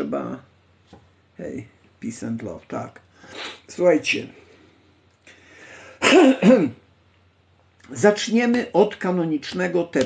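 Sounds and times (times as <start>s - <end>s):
man clearing his throat: 6.0s - 6.8s.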